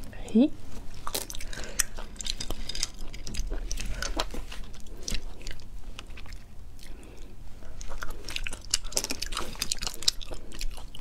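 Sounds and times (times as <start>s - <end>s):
sucking and chewing: 0.8s - 11.0s
wet mouth eating sounds: 0.9s - 11.0s.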